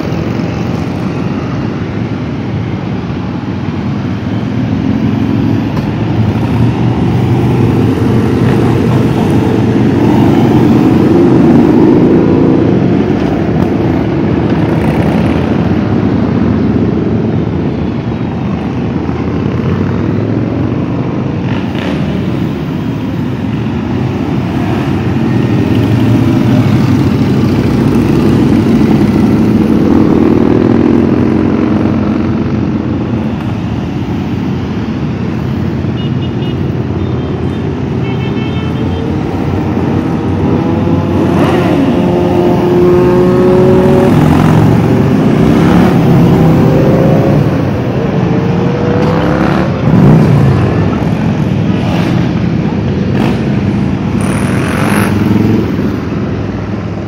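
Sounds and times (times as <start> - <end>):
motorcycles riding past: 38.6 - 57.0.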